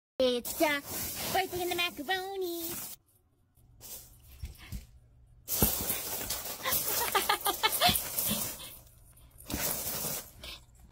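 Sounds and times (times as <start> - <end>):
dry pasta rustling and rattling: 0.3 - 3.1, 3.8 - 4.6, 5.4 - 10.8.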